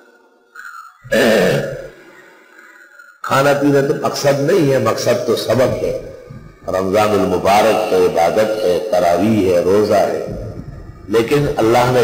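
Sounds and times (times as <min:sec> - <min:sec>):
man's wordless vocal sound: 0:00.6 - 0:12.0.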